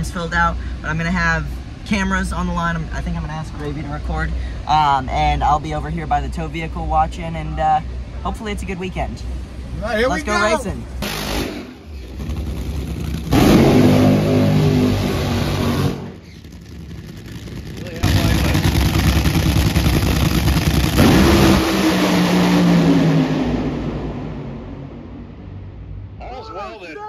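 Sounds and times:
drag racing engine at full throttle: 11.0s - 25.2s.

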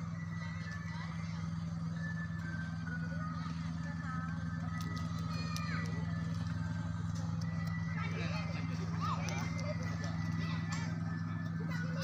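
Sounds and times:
faint voices: 0.0s - 12.0s
low engine drone: 0.0s - 12.0s.

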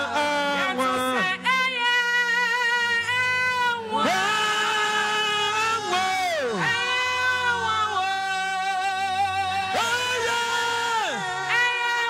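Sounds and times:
woman singing sustained notes: 0.0s - 12.0s.

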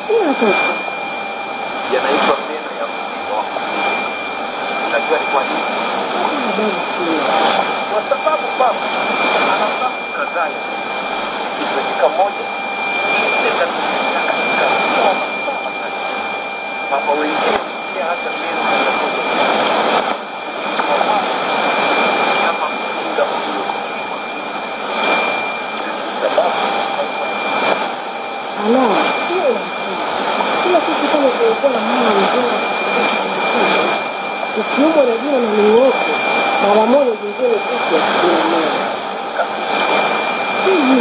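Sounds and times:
faint radio voice: 0.0s - 0.8s, 1.9s - 4.0s, 4.8s - 10.6s, 11.5s - 27.9s, 28.6s - 41.0s
radio hiss and static: 0.0s - 41.0s.

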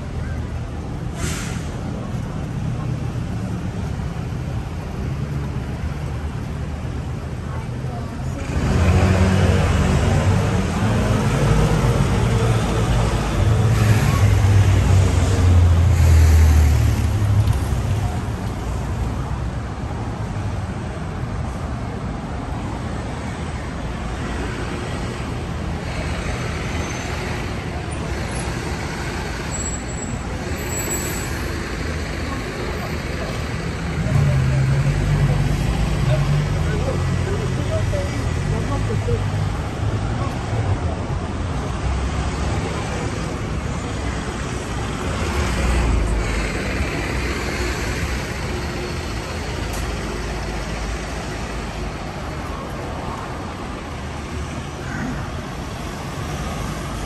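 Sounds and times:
steady road traffic: 0.0s - 57.0s.

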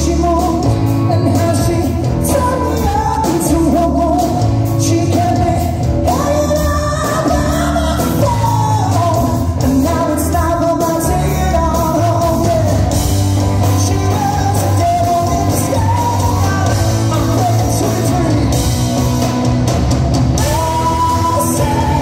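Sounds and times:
person singing lead vocal: 0.0s - 19.1s, 20.2s - 22.0s
live rock band playing: 0.0s - 22.0s.

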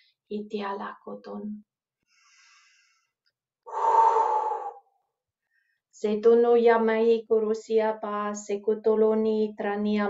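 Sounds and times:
woman breathing loudly: 2.1s - 4.9s.

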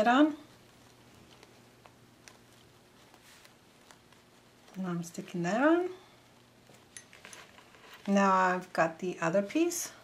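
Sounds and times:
soft handling ticks: 0.5s - 5.4s.

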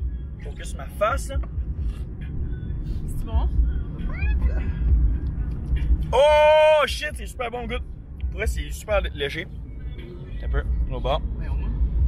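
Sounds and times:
road rumble inside car: 0.0s - 12.0s.

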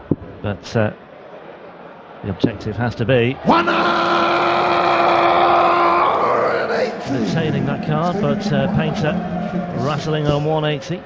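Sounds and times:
referee calling over microphone: 3.4s - 10.4s.

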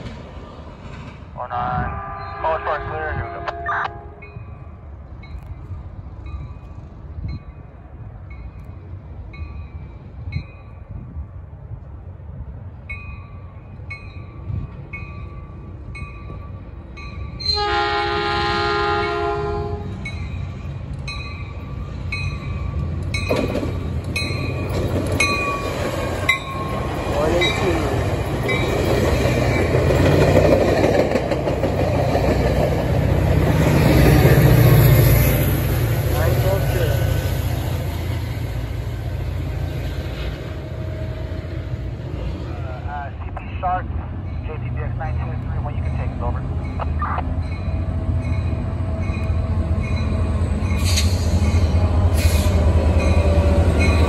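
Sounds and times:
train wheels rumbling on rails: 0.0s - 1.9s, 3.2s - 54.0s
diesel locomotive passing: 0.0s - 54.0s
train horn blast: 1.8s - 4.4s, 17.5s - 20.0s
train bell ringing: 2.1s - 11.0s, 12.8s - 17.8s, 20.0s - 23.5s, 24.2s - 29.9s, 45.6s - 51.8s.

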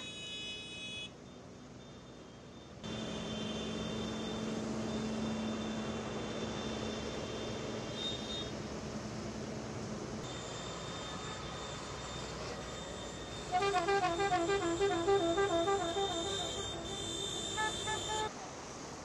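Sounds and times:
vehicle horns blasting: 0.0s - 1.2s, 2.8s - 4.2s, 7.9s - 8.5s, 13.4s - 18.3s
rumble of engines: 0.0s - 19.0s.

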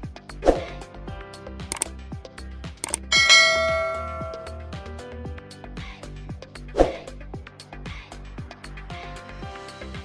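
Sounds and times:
background music with steady beat: 0.0s - 10.0s
notification bell chime: 3.1s - 4.8s.

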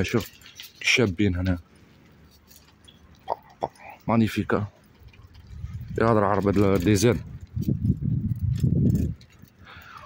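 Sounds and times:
wind buffeting microphone: 4.8s - 10.0s.

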